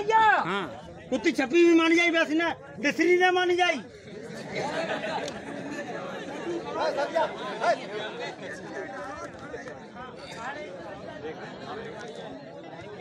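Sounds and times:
crowd chattering and calling out: 0.0 - 13.0.

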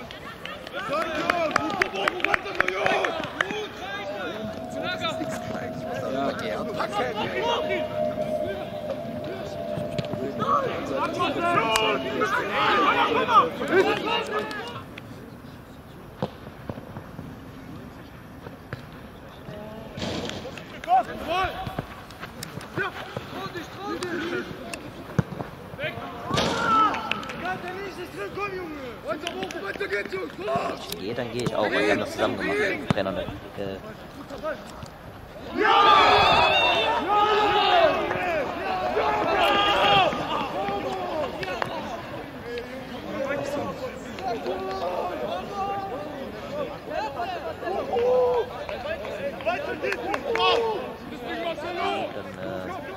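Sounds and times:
players shouting: 0.8 - 14.8, 35.4 - 52.1
high-pitched yells: 3.1 - 13.4.

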